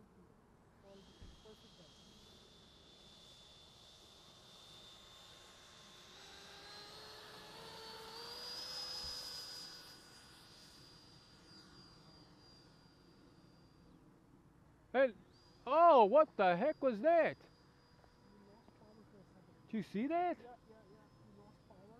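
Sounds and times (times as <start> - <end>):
electric ducted fan whining: 0.9 - 12.9.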